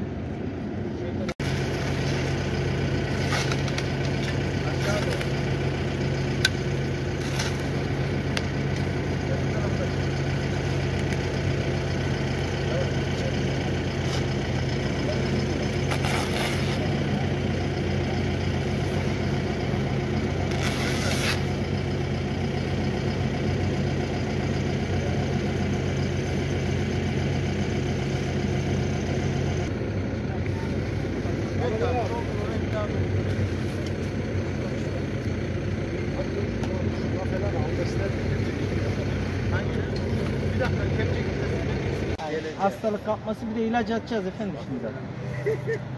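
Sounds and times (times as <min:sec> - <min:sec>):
truck engine idling: 0:00.0 - 0:45.9
low voices talking: 0:00.9 - 0:20.6, 0:30.0 - 0:45.9.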